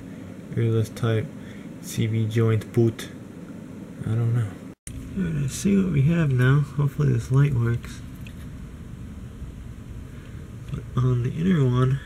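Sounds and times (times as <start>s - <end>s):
low background hum: 0.0s - 12.0s
person speaking: 4.0s - 8.2s, 10.6s - 12.0s.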